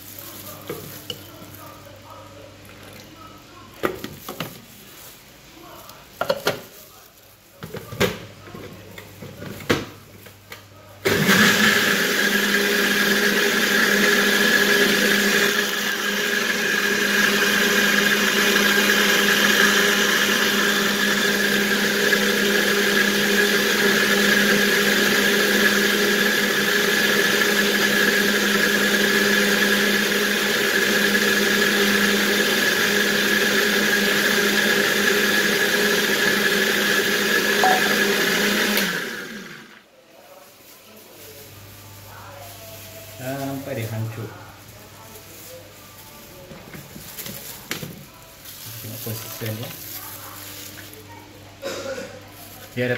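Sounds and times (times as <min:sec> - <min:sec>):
blender running: 0:11.0 - 0:39.9, 0:48.6 - 0:49.9.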